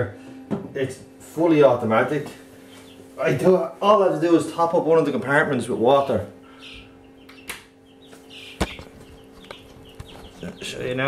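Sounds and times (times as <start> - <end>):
steady low hum: 0.0 - 11.0
sharp clicks: 7.3 - 7.7.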